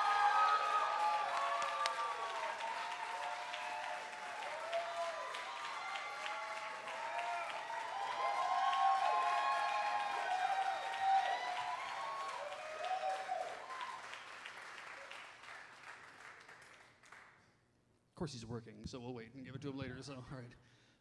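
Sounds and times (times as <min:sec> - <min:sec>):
cheering and whoops: 0:00.0 - 0:14.3
audience applauding: 0:00.0 - 0:17.4.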